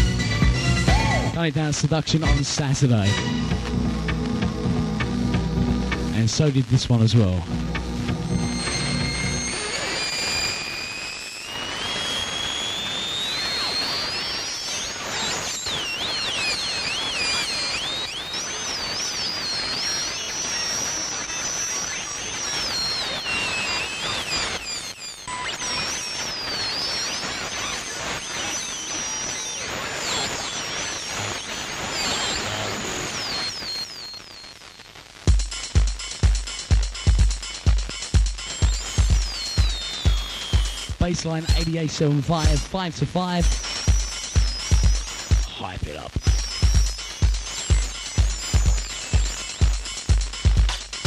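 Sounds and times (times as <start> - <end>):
radio hiss: 0.0 - 51.0
gliding radio whistling tones: 8.2 - 35.1, 37.5 - 51.0
techno drum beat: 35.3 - 51.0.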